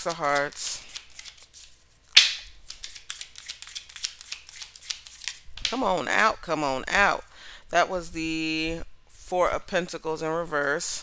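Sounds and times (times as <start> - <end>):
cards riffling swish: 0.0 - 5.7.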